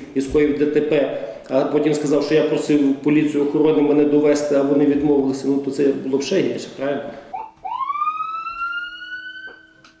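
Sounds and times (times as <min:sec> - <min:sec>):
siren wail rising: 0:07.3 - 0:10.0.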